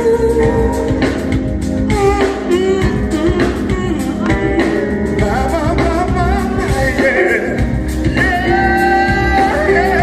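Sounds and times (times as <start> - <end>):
live soul-pop band: 0.0 - 10.0
woman and man singing duet: 1.9 - 10.0.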